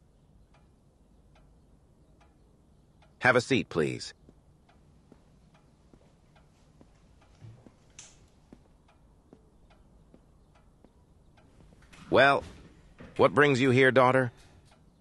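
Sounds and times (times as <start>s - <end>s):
clock ticking faintly: 0.0s - 15.0s.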